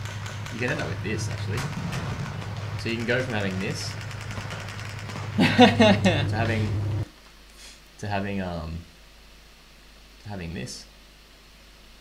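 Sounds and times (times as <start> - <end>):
keyboard typing: 0.0 - 6.2
low engine drone: 0.0 - 7.1
person laughing: 5.4 - 6.8.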